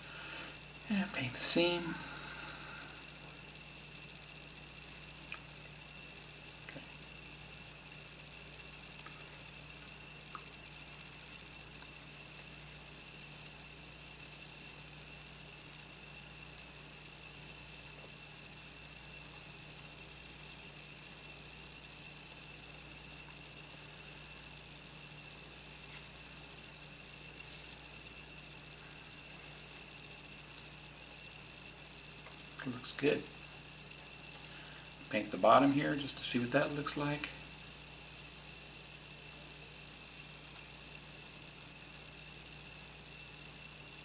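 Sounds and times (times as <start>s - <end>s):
electrical hum with whine: 0.0s - 44.0s
faint small ticks: 4.8s - 6.0s, 8.8s - 13.6s, 16.4s - 16.8s, 31.9s - 32.6s.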